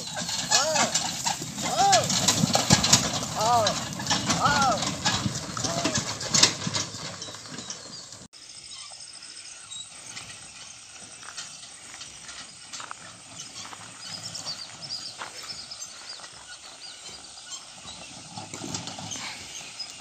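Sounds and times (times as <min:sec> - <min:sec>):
hooves clopping: 0:00.0 - 0:08.3, 0:09.7 - 0:20.0
cart rolling over dirt track: 0:00.0 - 0:20.0
distant cart approaching: 0:00.0 - 0:20.0.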